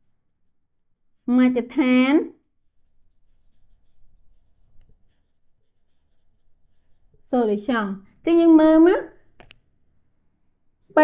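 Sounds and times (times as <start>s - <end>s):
marker scratching on whiteboard: 2.7s - 8.8s.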